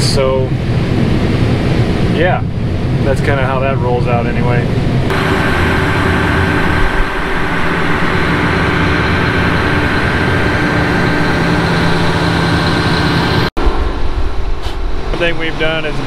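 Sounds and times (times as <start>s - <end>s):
combine engine drone: 0.0s - 16.0s
high steady whine: 0.0s - 16.0s.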